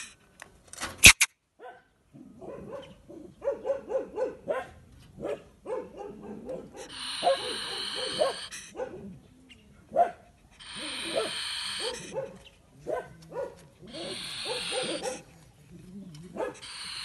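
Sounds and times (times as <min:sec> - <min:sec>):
polecat yapping chatters: 0:06.2 - 0:09.3, 0:10.5 - 0:17.0
polecat hissing: 0:06.7 - 0:08.8, 0:10.4 - 0:12.5, 0:13.8 - 0:17.0.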